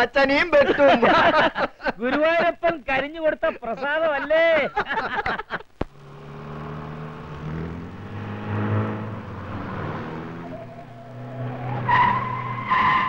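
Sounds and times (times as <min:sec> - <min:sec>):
car engine running: 0:05.9 - 0:12.6
short loud tyre squeals: 0:09.7 - 0:13.0.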